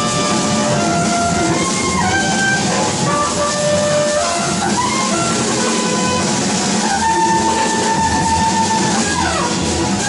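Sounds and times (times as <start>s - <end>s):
drums and cymbals: 0.0s - 10.0s
held high instrument notes: 0.0s - 10.0s.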